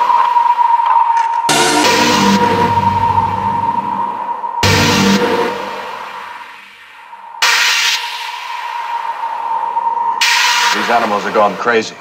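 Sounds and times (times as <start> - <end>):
steady held electronic tone: 0.0 - 12.0.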